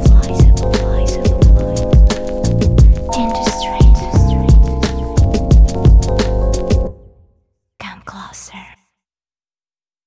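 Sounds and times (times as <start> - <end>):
whispered voice: 7.8 - 8.9.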